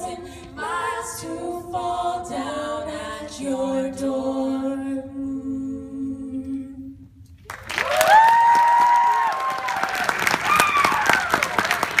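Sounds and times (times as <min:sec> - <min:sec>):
a cappella group singing chord: 0:00.0 - 0:07.2
audience applause: 0:07.5 - 0:12.0
high-pitched cheers and whoops: 0:07.8 - 0:11.8.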